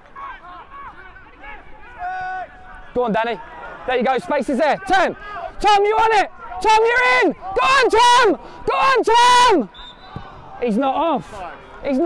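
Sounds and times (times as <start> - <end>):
distant shouting: 0.0 - 10.8.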